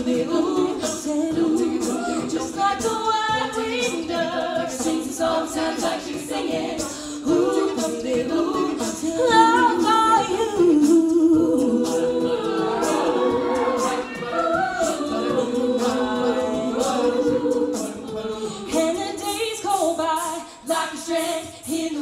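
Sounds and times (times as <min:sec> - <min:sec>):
vocal percussion: 0:00.0 - 0:22.0
women singing in harmony: 0:00.0 - 0:22.0
sustained backing voices: 0:11.4 - 0:19.2.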